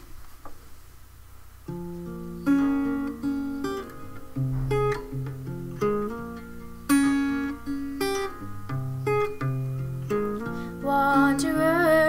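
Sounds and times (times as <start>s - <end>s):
faint hiss: 0.0s - 12.0s
acoustic guitar plucked notes: 1.6s - 12.0s.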